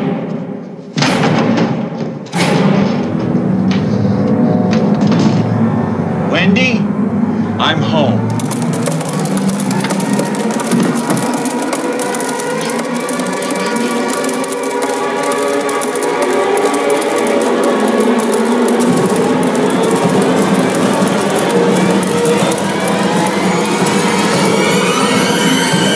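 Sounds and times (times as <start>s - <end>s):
dense ticking texture: 3.1s - 25.9s
orchestral held tones: 5.5s - 25.9s.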